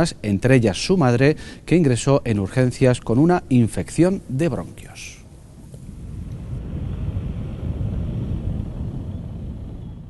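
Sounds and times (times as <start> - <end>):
low outdoor rumble: 2.6 - 10.0.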